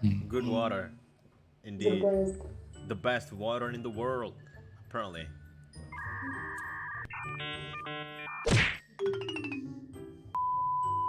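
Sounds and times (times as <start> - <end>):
faint background music: 0.0 - 7.7
loud whack: 8.5 - 8.8.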